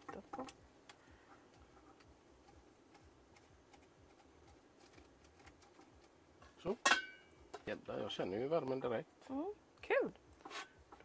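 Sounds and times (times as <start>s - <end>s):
metal lid clattering: 6.8s - 7.3s.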